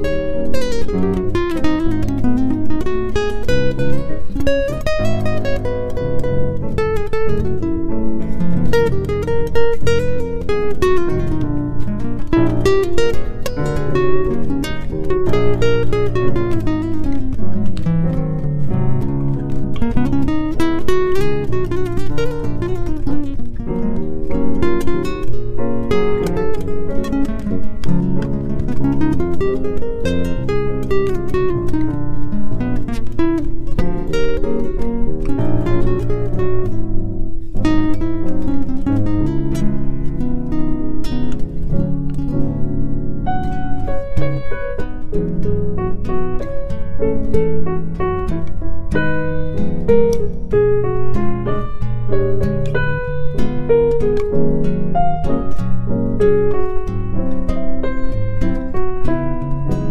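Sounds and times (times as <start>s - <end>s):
acoustic guitar music: 0.0s - 59.9s.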